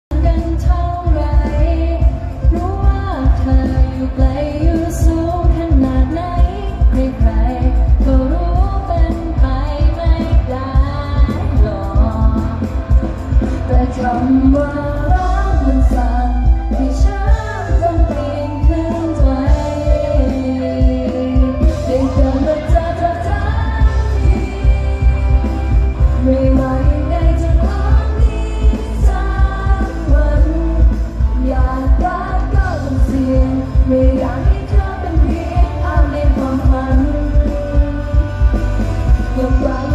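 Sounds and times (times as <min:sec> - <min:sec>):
live pop song over pa: 0:00.0 - 0:39.9
heavy kick drum and bass: 0:00.1 - 0:39.9.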